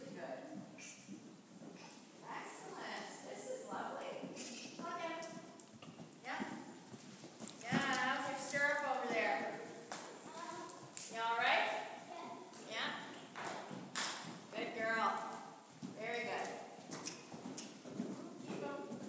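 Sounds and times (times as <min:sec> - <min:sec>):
horse hoofbeats cantering: 0:00.0 - 0:19.0.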